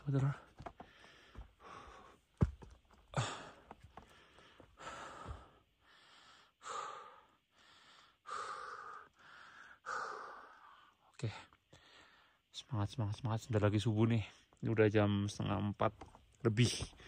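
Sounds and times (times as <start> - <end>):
man breathing hard: 0.8 - 2.3, 3.1 - 11.0.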